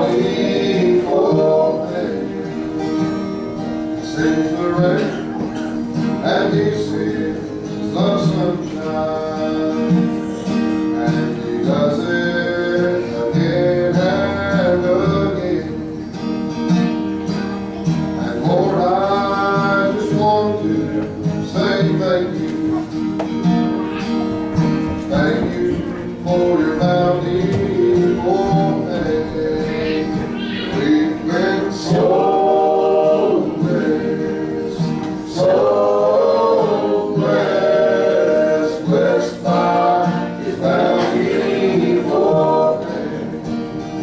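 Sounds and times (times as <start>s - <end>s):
men singing gospel: 0.0s - 16.0s, 18.2s - 23.1s, 24.9s - 44.0s
guitar accompaniment: 0.0s - 44.0s.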